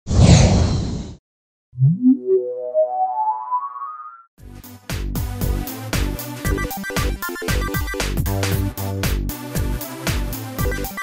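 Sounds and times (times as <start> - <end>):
synthesizer music: 1.8 - 4.3, 5.5 - 11.0.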